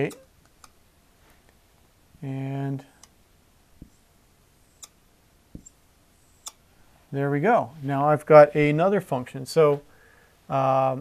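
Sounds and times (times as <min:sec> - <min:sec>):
marker tapping on whiteboard: 0:05.5 - 0:05.7.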